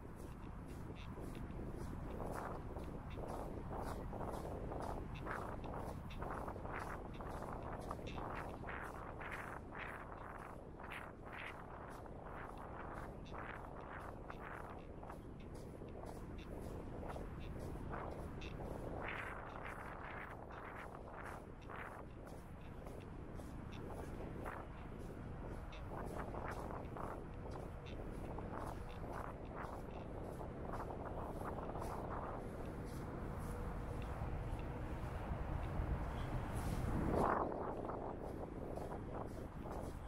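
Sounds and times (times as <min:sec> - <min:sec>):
footsteps crunching on sand: 0:00.0 - 0:40.0.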